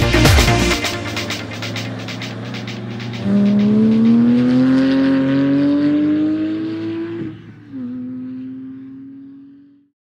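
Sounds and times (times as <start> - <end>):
sports car engine accelerating: 0.1 - 9.9.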